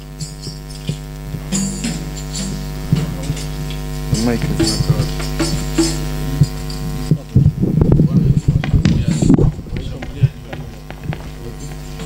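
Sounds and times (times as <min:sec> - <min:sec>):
electrical mains hum: 0:00.0 - 0:12.0
low thumps and knocks: 0:02.8 - 0:12.0.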